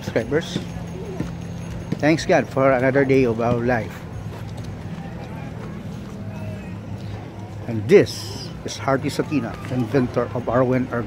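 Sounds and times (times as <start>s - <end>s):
faint voices of passers-by: 0.0s - 11.0s.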